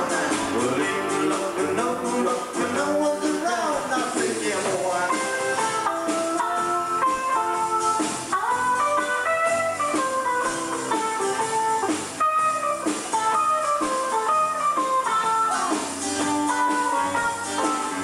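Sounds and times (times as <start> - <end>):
bass: 0.0 - 18.0
drums: 0.0 - 18.0
picked guitar melody: 0.0 - 18.0
strummed chords: 0.0 - 18.0.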